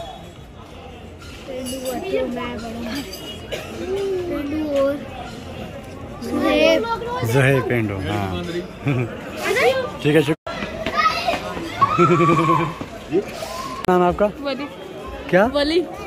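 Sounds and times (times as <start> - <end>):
children talking and calling out: 1.2 - 8.4, 9.0 - 13.9.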